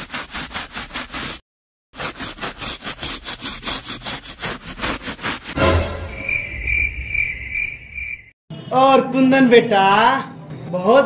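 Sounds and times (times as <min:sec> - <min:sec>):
rasping scratching strokes: 0:00.0 - 0:01.4, 0:02.0 - 0:06.1
crickets chirping: 0:06.1 - 0:08.3.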